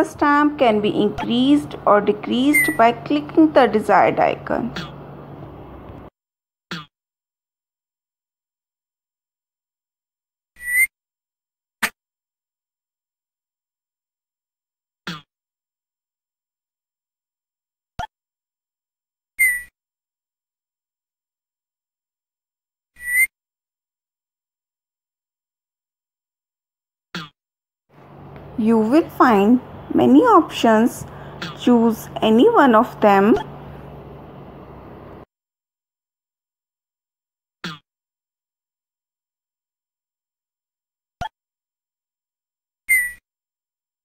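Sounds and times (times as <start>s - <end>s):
electronic chirp: 2.4s - 2.9s.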